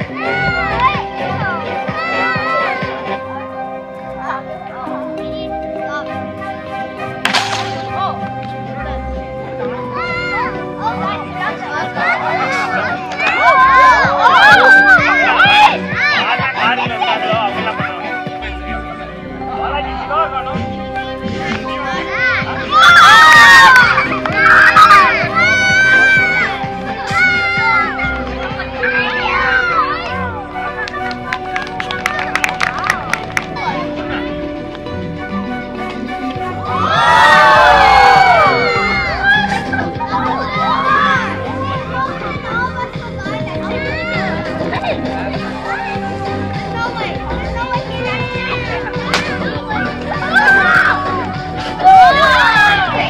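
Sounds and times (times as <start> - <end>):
children shouting: 0.0 - 19.7, 21.0 - 53.0
children calling out: 0.0 - 19.8, 21.0 - 53.0
background music: 0.0 - 53.0.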